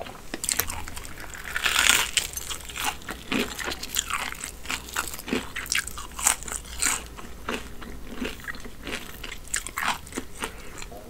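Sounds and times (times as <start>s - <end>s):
chewing crispy fried chicken: 0.0s - 11.0s.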